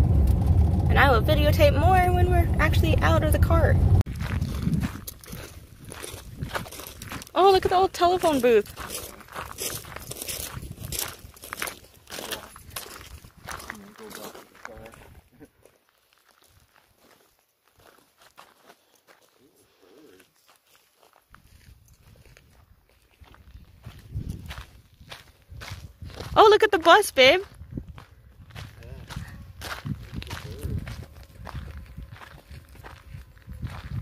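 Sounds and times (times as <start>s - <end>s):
footsteps crunching on gravel: 4.0s - 19.6s, 20.2s - 26.8s, 27.4s - 34.0s.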